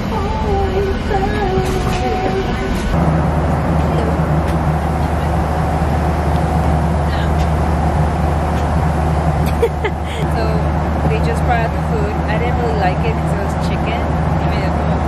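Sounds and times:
airliner cabin engine drone: 0.0 - 15.0
faint voices: 3.6 - 6.0, 7.0 - 7.6.

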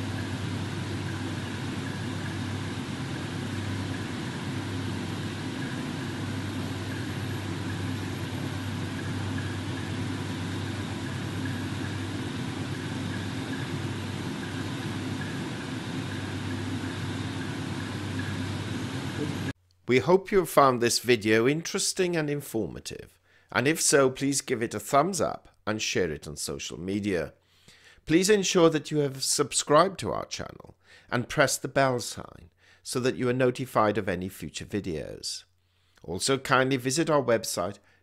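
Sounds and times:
low droning hum: 0.0 - 19.6
even hiss: 0.0 - 20.7.

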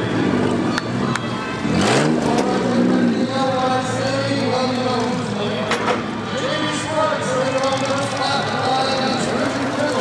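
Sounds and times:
other race cars running: 0.0 - 10.0
race car engine revving: 1.6 - 6.3.

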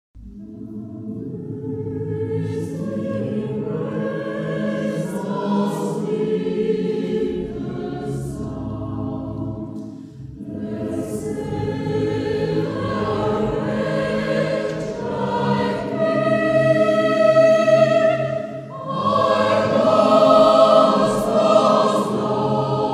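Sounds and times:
choir singing sacred music: 0.2 - 22.9.

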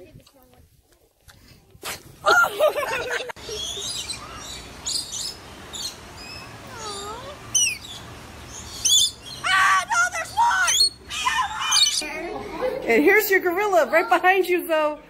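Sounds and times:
parrot chirps and whistles: 6.2 - 8.0, 8.8 - 9.4, 11.6 - 12.0
high-pitched parrot squeals: 6.7 - 7.9, 8.9 - 12.0.

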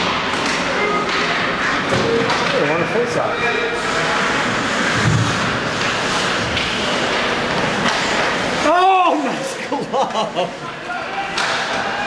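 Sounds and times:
sharp knocks of sticks and puck: 0.0 - 1.3, 6.5 - 8.4, 11.4 - 11.8
skates scraping ice: 3.8 - 9.4.

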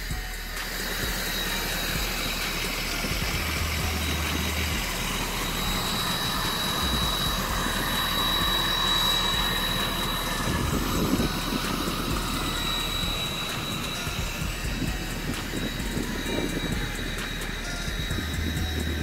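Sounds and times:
low buffeting rumble: 0.0 - 19.0
wind rushing on microphone: 10.4 - 19.0.

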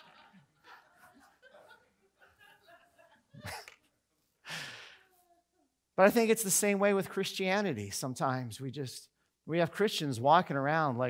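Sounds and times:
man exhaling breathily: 4.5 - 5.0.

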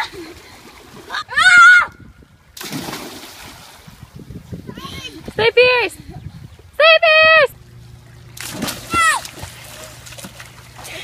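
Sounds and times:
splash of jumping into pool: 2.6 - 3.8, 8.4 - 11.0.

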